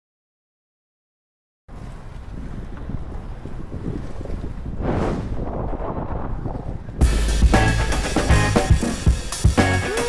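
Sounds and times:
wind buffeting microphone: 1.7 - 9.3.

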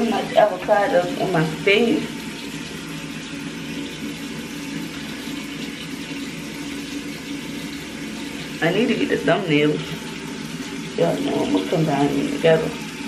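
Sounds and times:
water running: 0.0 - 13.0.

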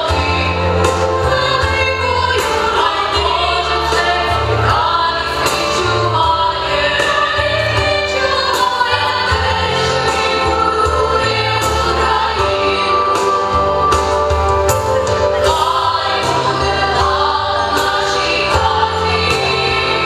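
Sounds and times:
backing music with bass and beat: 0.0 - 20.0
large group singing amplified: 0.0 - 20.0.

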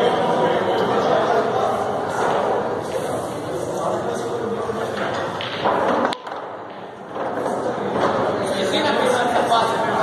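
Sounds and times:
murmur of spectators talking: 0.0 - 10.0
pool cue striking ball: 4.8 - 8.4.

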